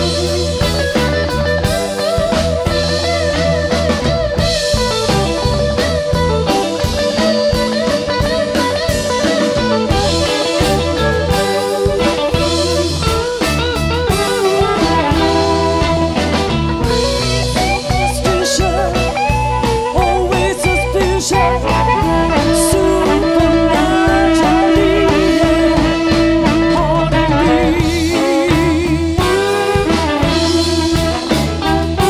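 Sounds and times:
bass guitar: 0:00.0 - 0:32.0
drum kit: 0:00.0 - 0:32.0
electric guitar with bent notes: 0:00.0 - 0:32.0.

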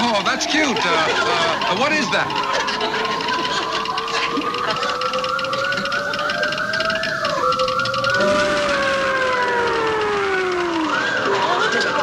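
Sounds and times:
warbling electronic sci-fi tones: 0:00.0 - 0:12.0
steady tones rising and sliding: 0:05.4 - 0:11.4.

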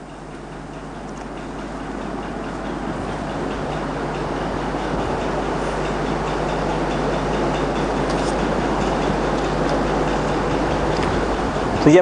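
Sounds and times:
background hiss and rumble: 0:00.0 - 0:12.0.

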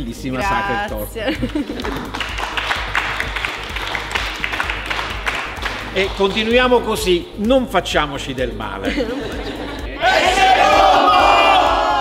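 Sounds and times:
people clapping: 0:01.5 - 0:07.1.

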